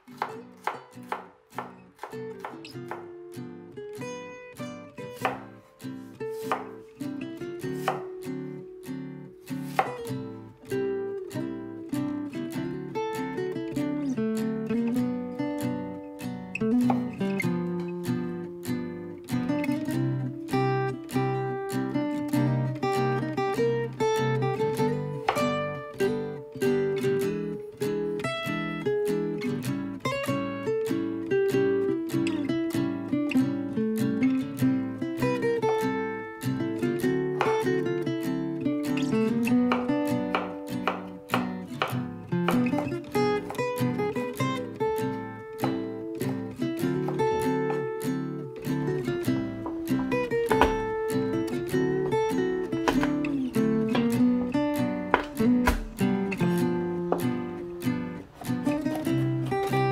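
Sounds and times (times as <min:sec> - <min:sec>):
acoustic guitar music: 0:00.0 - 0:59.9
knife chopping on cutting board: 0:00.2 - 0:03.1, 0:05.2 - 0:05.5, 0:06.4 - 0:06.8, 0:07.8 - 0:08.1, 0:09.6 - 0:10.0, 0:39.7 - 0:42.6, 0:50.5 - 0:50.8, 0:52.8 - 0:53.2, 0:55.1 - 0:56.0.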